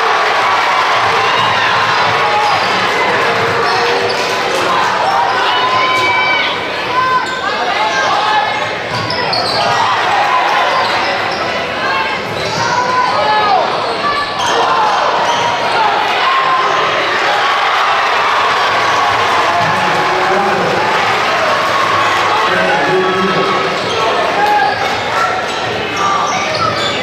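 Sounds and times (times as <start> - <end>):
crowd and player voices: 0.0 - 27.0
sneakers squeaking: 1.3 - 4.4, 7.0 - 15.8, 23.6 - 27.0.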